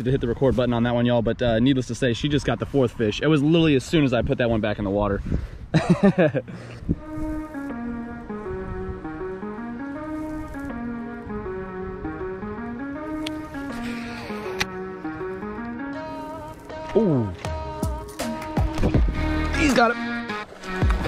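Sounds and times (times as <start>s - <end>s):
person laughing: 5.7s - 6.7s
background music with held notes: 6.5s - 21.0s.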